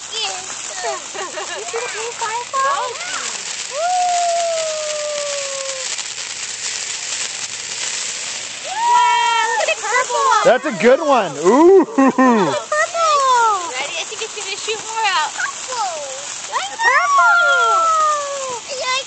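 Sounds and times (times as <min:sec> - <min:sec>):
faint crackle of sparks: 0:00.0 - 0:19.0
firework fountain hissing: 0:00.0 - 0:19.0.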